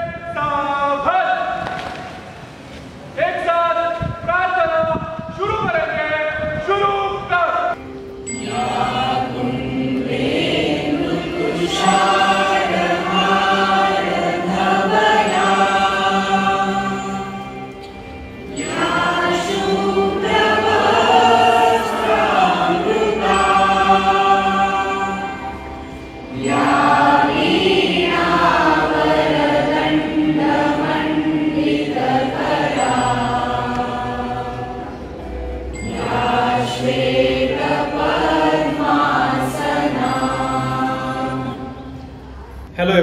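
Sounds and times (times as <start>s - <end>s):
many voices singing a prayer: 8.3s - 42.2s.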